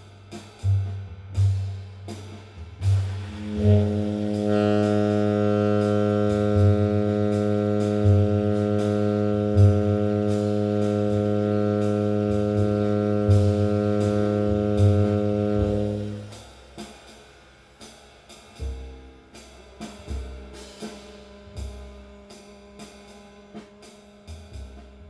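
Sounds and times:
bass and drums backing: 0:00.0 - 0:25.0
cymbal strokes: 0:00.0 - 0:25.0
tenor saxophone long low note: 0:03.1 - 0:16.4.

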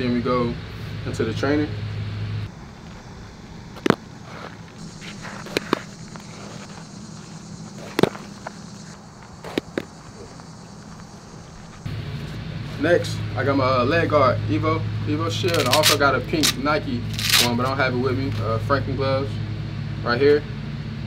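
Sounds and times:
steady outdoor hiss: 0:00.0 - 0:21.0
baseball popping into glove: 0:03.8 - 0:06.4, 0:07.8 - 0:08.5.

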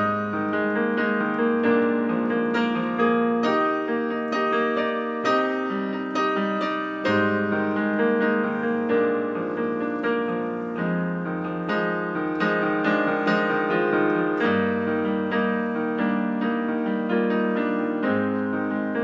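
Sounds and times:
low piano bass notes: 0:00.0 - 0:19.0
piano chords: 0:00.0 - 0:19.0.

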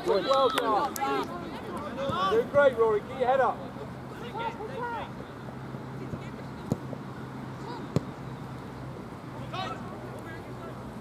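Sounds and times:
distant players shouting: 0:00.0 - 0:05.2, 0:07.5 - 0:08.2, 0:09.3 - 0:10.9.

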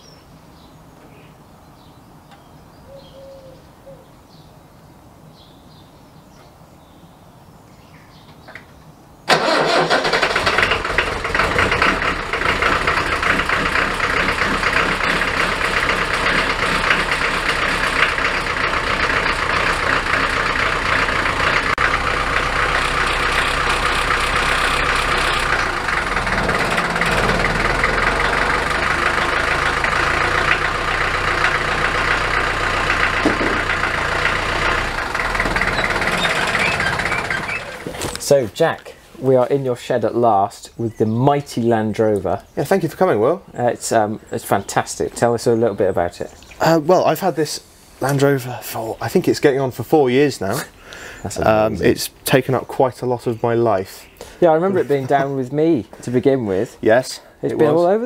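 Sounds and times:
diesel engine starting and idling: 0:09.3 - 0:38.3.

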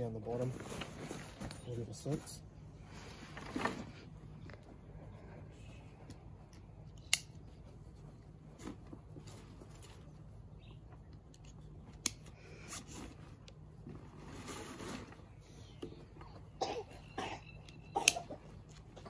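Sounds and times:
backpack fabric rustling: 0:00.2 - 0:04.2.

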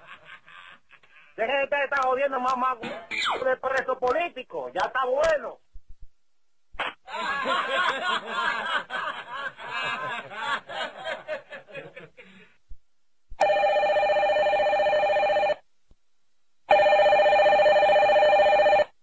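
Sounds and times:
man laughing: 0:00.0 - 0:01.4, 0:07.1 - 0:12.5
desk telephone ringing: 0:13.4 - 0:15.6, 0:16.7 - 0:18.9.

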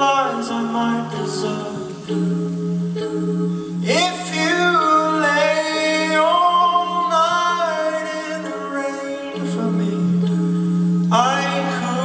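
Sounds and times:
a cappella group singing: 0:00.0 - 0:12.0.

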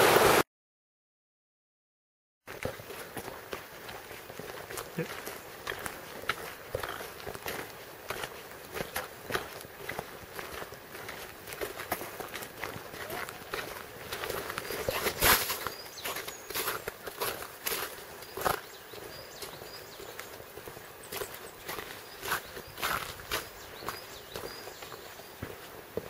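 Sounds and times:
footsteps on wet snowy track: 0:02.5 - 0:26.0.

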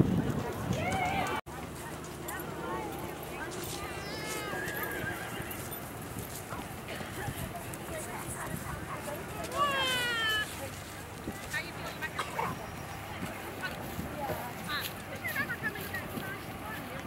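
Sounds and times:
hoofbeats on sand: 0:00.0 - 0:17.0
horse whinnying: 0:04.1 - 0:05.8.

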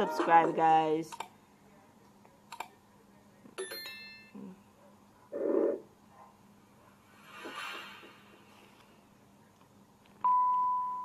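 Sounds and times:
brief burst of noise: 0:07.1 - 0:08.8.

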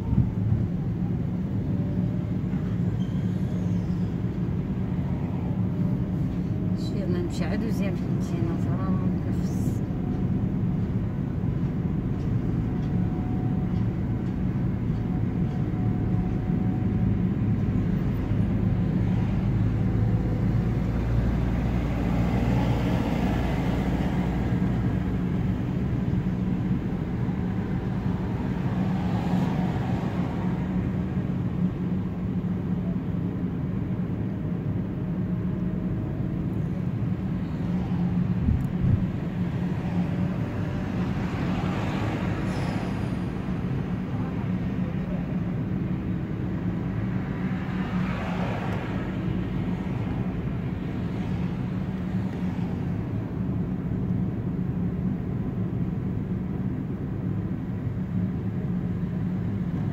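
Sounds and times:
tyre and road noise: 0:00.0 - 0:59.9.

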